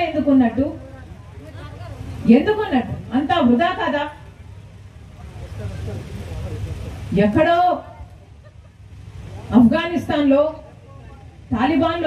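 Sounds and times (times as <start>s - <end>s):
faint voices: 4.2s - 9.7s.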